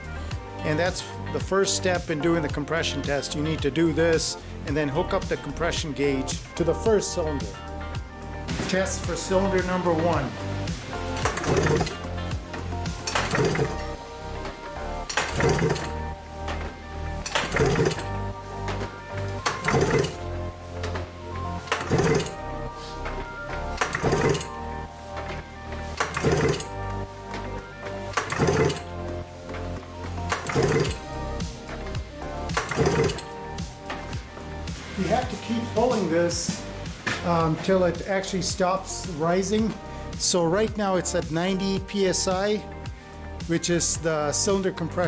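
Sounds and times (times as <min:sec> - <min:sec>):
background music: 0:00.0 - 0:45.0
engine cranked by pull cord: 0:11.2 - 0:12.0, 0:13.0 - 0:13.9, 0:15.1 - 0:16.0, 0:17.2 - 0:18.1, 0:19.4 - 0:20.2, 0:21.6 - 0:22.4, 0:23.8 - 0:24.5, 0:26.0 - 0:26.7, 0:28.1 - 0:28.9, 0:30.3 - 0:31.0, 0:32.5 - 0:33.3.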